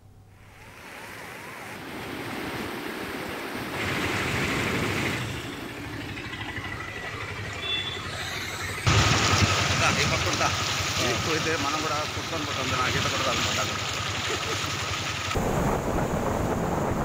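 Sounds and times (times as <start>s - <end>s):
vehicle noise: 0.0s - 17.0s
floodwater rushing: 0.4s - 17.0s.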